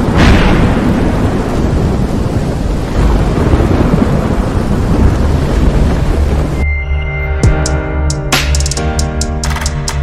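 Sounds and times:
steady rain: 0:00.0 - 0:06.6
thunder rumbling: 0:00.0 - 0:06.6.

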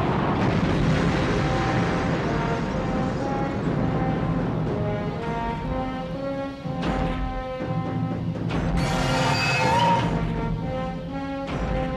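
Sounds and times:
rushing noise: 0:00.0 - 0:06.7
film score with sustained chords: 0:00.2 - 0:11.9.

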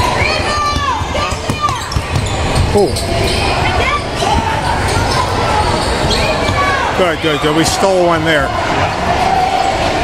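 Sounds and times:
echoing ball and court noise: 0:00.0 - 0:10.0.

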